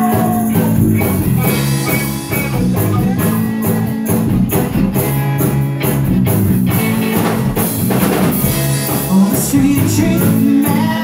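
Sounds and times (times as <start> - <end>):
acoustic guitar: 0.0 - 11.0
drum kit: 0.0 - 11.0
electric guitar: 0.0 - 11.0.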